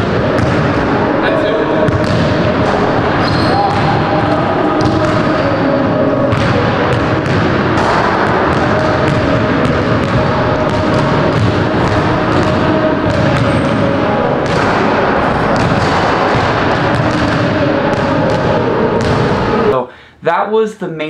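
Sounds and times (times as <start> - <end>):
basketballs bouncing on hardwood: 0.4 - 0.7, 1.9 - 2.4, 6.3 - 13.8, 19.0 - 19.2
person talking: 19.7 - 21.0.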